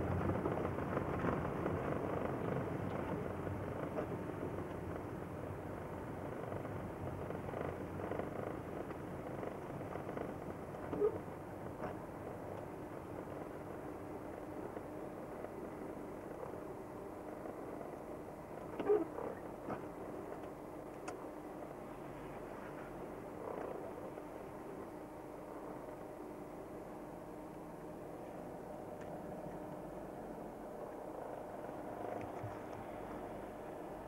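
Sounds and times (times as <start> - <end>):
tyres on hail-covered road: 0.0 - 23.2
car engine rumble: 0.0 - 34.0.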